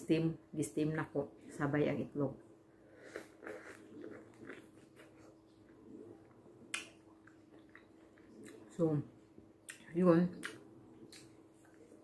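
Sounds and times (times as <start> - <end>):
person chewing juicy fruit: 2.8 - 12.0.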